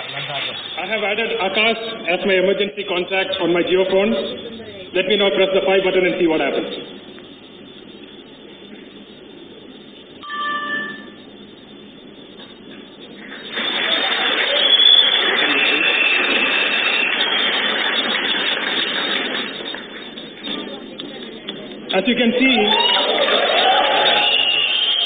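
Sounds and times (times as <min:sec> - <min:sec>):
phone electronic alert tone: 0:10.2 - 0:11.4.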